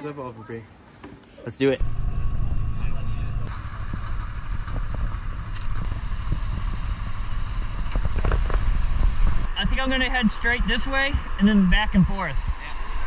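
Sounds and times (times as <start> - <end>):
underwater rumble of moving water: 1.8 - 13.0.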